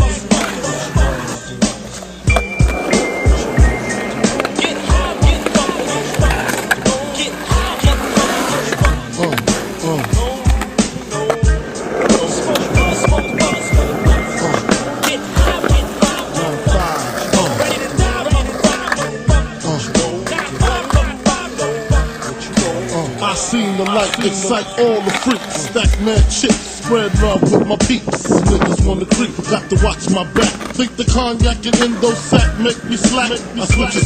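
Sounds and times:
hip-hop beat: 0.0s - 34.0s
skateboard wheels rolling: 0.0s - 34.0s
skateboard knocking on concrete: 1.8s - 34.0s.

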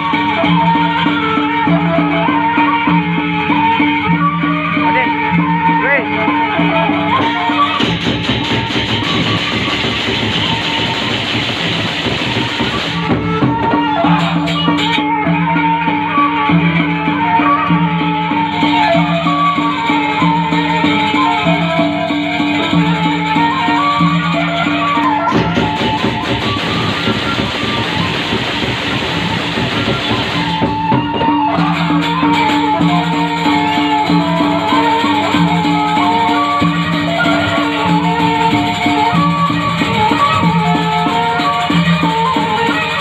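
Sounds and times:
drums: 0.0s - 43.0s
sustained pitched melody: 0.0s - 43.0s
cymbals clashing fast: 7.1s - 17.0s, 18.0s - 43.0s.

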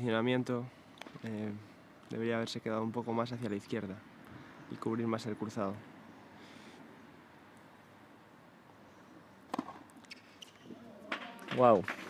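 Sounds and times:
faint outdoor background: 0.0s - 12.0s
tennis racket striking ball: 9.5s - 10.2s.

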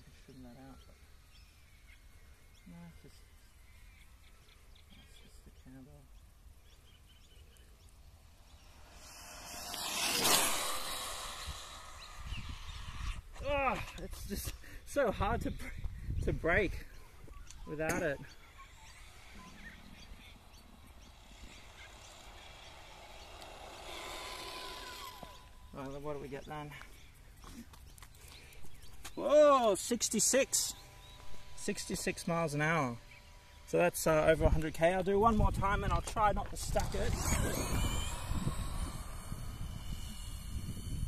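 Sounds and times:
rc car driving on asphalt: 0.1s - 41.0s
low wind rumble: 6.1s - 27.4s, 28.5s - 41.0s
high motor whine: 6.1s - 41.0s
wind rumble on microphone: 9.4s - 17.5s, 34.2s - 41.0s.

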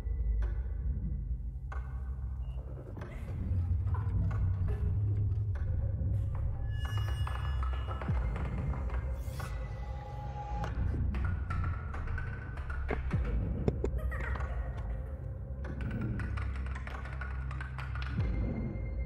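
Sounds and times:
taps and knocks: 12.9s - 14.0s.

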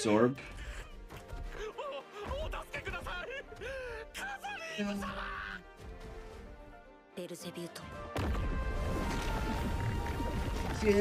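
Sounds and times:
soundtrack music: 1.0s - 11.0s.

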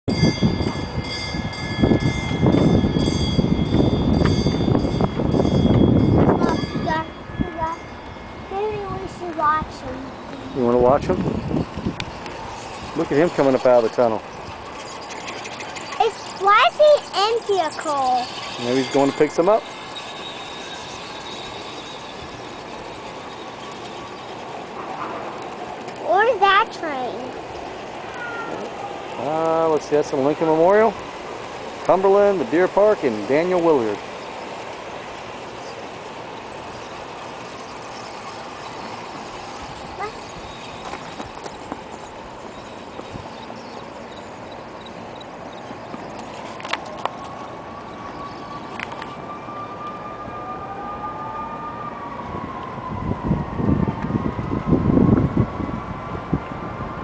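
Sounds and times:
train bell ringing: 0.1s - 25.6s, 30.4s - 45.9s.

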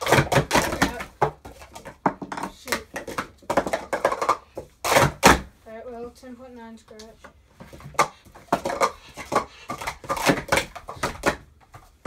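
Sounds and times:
plastic cups clattering: 0.0s - 5.4s, 7.2s - 12.0s.

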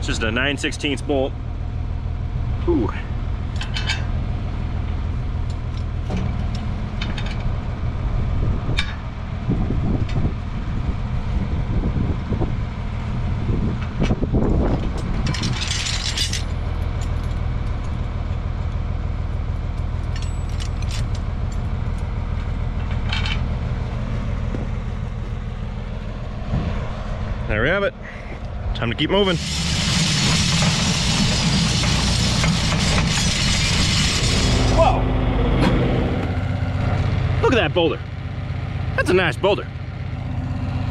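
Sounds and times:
tractor engine idling: 12.6s - 40.9s
metal clinks of wrenches: 15.2s - 18.0s, 20.0s - 21.7s.

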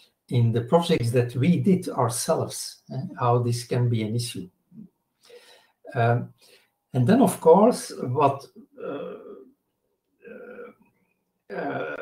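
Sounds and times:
man saying uh: 0.4s - 4.4s, 5.9s - 6.3s, 7.0s - 9.4s, 11.5s - 12.0s.

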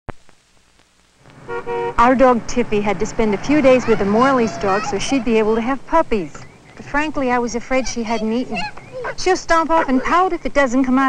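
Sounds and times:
car horn honking: 1.4s - 5.8s.

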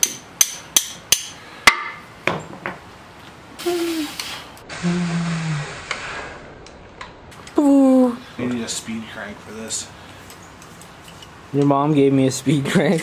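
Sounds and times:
hissy workshop noise: 3.6s - 7.6s.

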